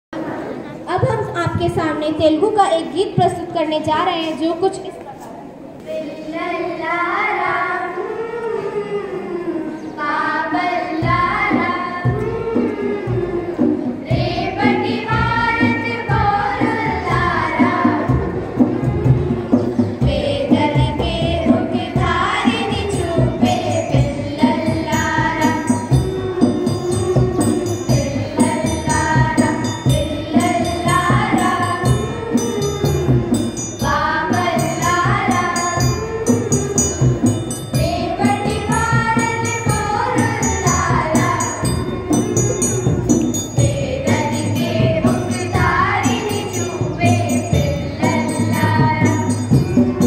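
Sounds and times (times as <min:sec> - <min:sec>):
girls singing a long held note: 0:05.8 - 0:50.0
steady percussion beat: 0:11.0 - 0:50.0.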